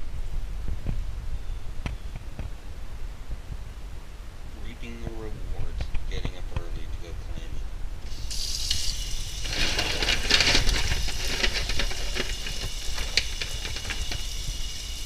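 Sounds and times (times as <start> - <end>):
food sizzling in a pan: 8.0 - 15.0.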